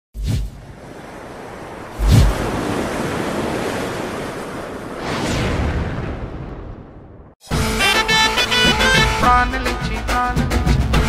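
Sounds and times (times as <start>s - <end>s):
ocean surf rushing: 0.4s - 6.7s
deep booms: 5.0s - 7.4s.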